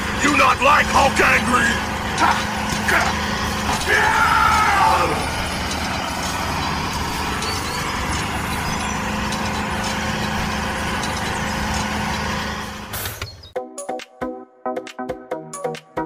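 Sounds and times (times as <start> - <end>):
tractor engine throbbing: 0.0 - 13.6.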